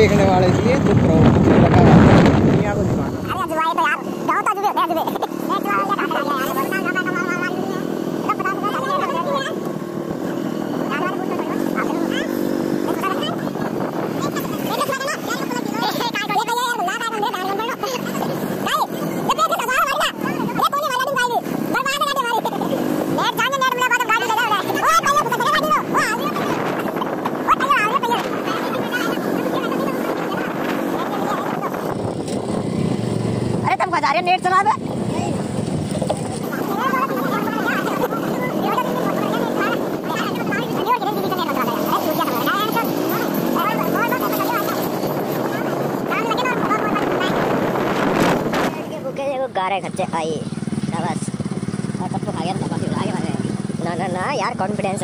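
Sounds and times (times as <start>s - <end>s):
motorcycle engine running: 0.0s - 55.0s
road and wind noise: 0.0s - 55.0s
person talking: 10.8s - 32.0s, 48.6s - 55.0s.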